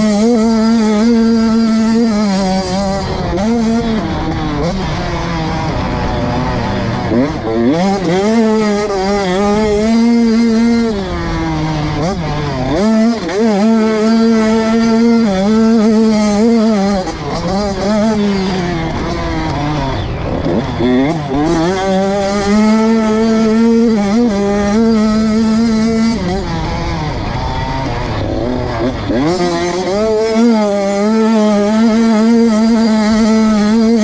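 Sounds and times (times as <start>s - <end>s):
motorbike engine revving: 0.0s - 34.0s.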